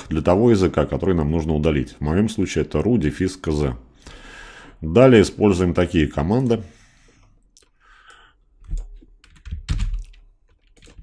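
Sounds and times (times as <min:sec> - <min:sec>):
computer keyboard keystrokes: 0:08.1 - 0:11.0.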